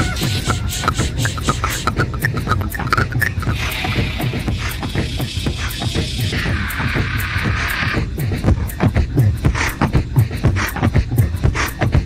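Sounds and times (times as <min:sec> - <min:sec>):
airy hissing layer: 0:00.0 - 0:08.4
beatboxed mouth percussion: 0:00.0 - 0:12.0.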